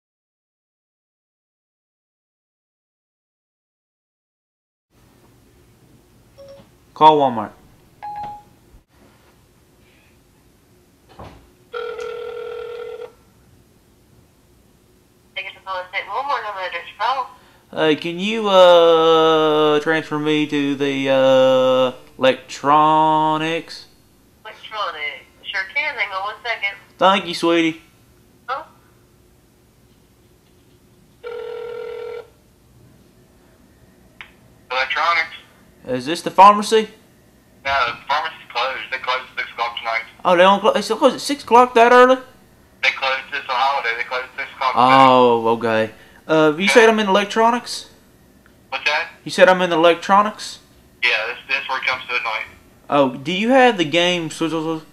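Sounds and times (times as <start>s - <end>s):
short electronic beep: 6.4s - 6.6s, 8.0s - 8.5s
phone ringing tone: 6.4s - 6.7s, 8.0s - 8.5s, 11.7s - 13.2s, 31.2s - 32.4s.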